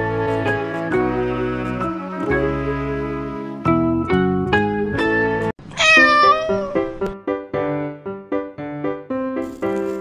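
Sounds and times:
cheerful instrumental music: 0.0 - 9.9
cat meowing: 5.7 - 7.0.

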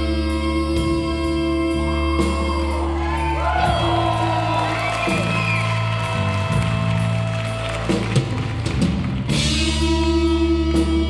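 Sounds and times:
bass: 0.0 - 11.0.

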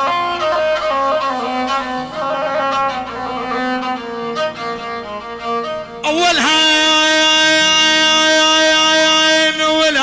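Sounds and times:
violin-toned long note: 0.0 - 10.0.

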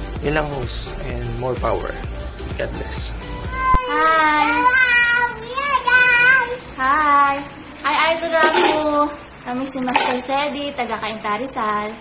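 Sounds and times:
child calling in sing-song voice: 3.5 - 7.4.

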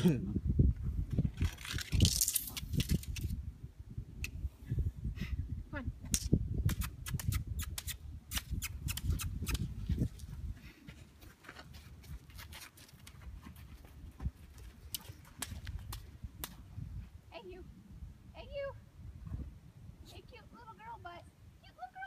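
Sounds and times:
footsteps crunching on sand: 9.9 - 15.9.

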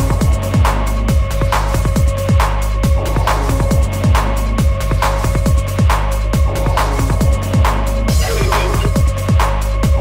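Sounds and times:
electronic breakbeat dance music: 0.0 - 10.0.

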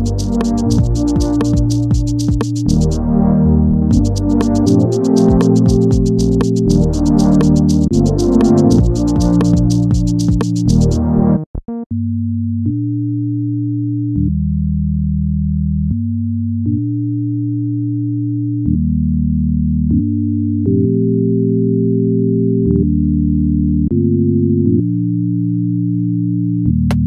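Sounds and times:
synthesizer low chord: 0.0 - 27.0.

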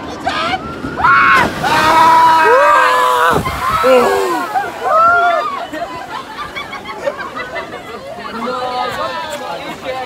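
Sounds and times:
people screaming: 0.2 - 5.9
boat splashing into water: 0.4 - 6.6.

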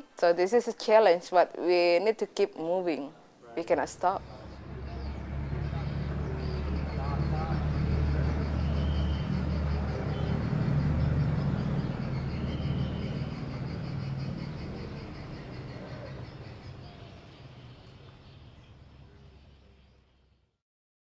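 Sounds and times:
faint distant voices: 3.1 - 20.4
traffic noise: 3.6 - 20.5
vehicle engine rumbling: 3.8 - 20.5.

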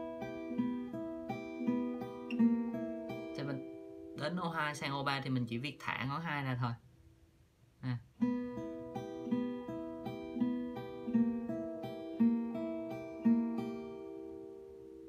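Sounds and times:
fingerpicked acoustic guitar: 0.0 - 6.1, 7.9 - 15.0.

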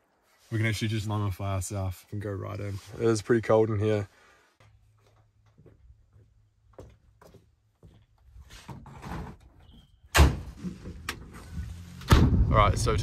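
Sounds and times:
truck door slamming: 10.1 - 10.6, 12.1 - 12.5.

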